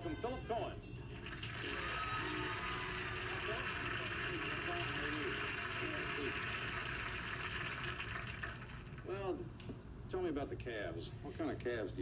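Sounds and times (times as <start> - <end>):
studio audience applauding: 1.2 - 9.1.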